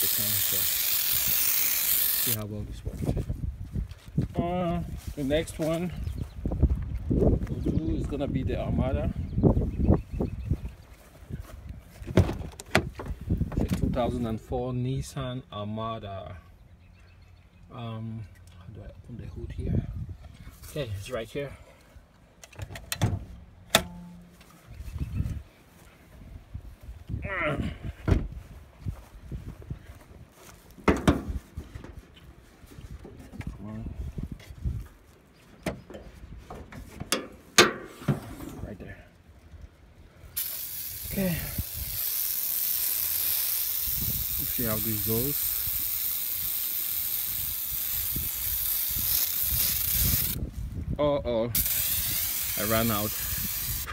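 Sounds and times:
footsteps on grass: 2.6s - 8.4s, 9.4s - 13.6s, 24.1s - 27.1s, 27.9s - 37.5s.

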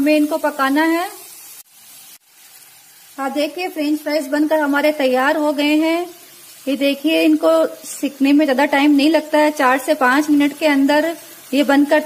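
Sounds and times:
fries sizzling in oil: 0.0s - 12.0s.

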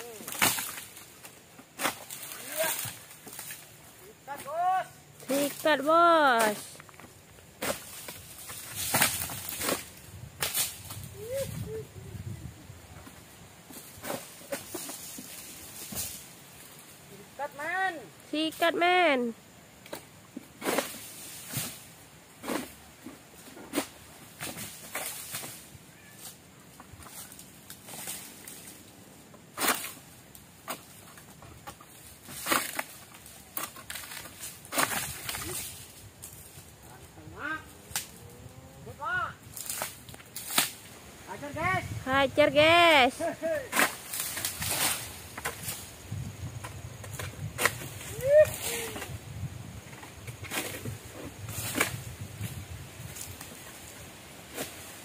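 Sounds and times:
sickle scraping through fronds: 0.0s - 17.7s, 18.4s - 55.0s.

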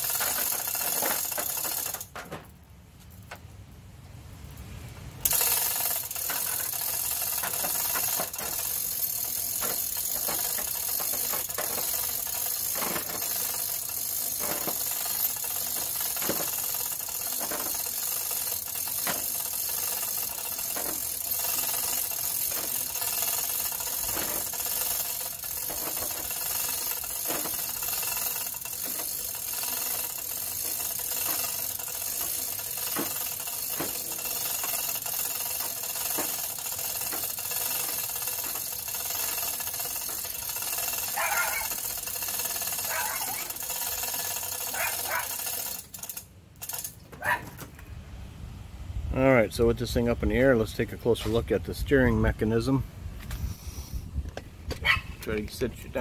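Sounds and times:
chain rattling: 0.0s - 2.5s, 5.2s - 47.5s
hoist pawl clicking: 0.0s - 3.5s, 5.2s - 47.4s
steady background hum: 0.0s - 56.0s.

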